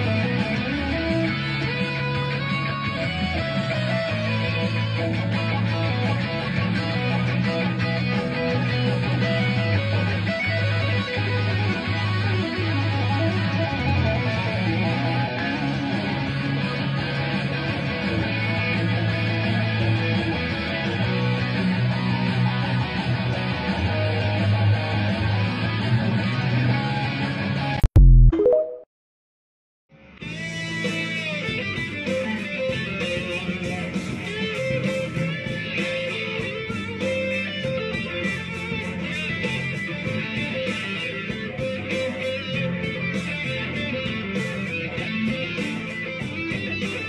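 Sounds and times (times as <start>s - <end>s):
electric guitar solo: 0.0s - 27.8s, 30.3s - 47.0s.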